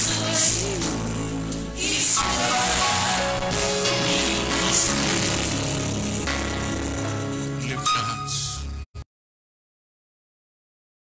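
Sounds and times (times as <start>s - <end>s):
choir singing: 0.0s - 7.1s
band playing bass and chords: 0.0s - 8.8s.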